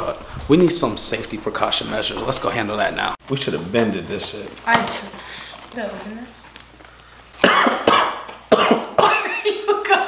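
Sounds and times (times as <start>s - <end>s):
person coughing: 7.4s - 9.4s.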